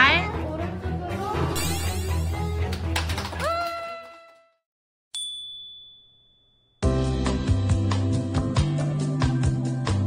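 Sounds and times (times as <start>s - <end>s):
high-pitched ding: 5.1s - 6.8s
background music with a beat: 6.8s - 10.0s.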